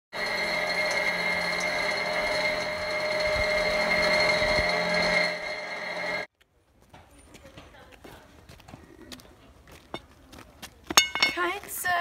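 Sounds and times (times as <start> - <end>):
mechanical whirring with high whine: 0.2 - 6.3.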